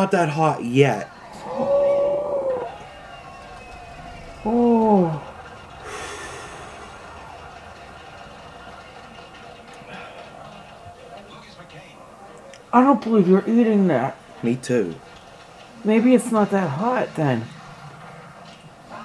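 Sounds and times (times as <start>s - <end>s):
breathy out-breath: 5.8s - 7.2s.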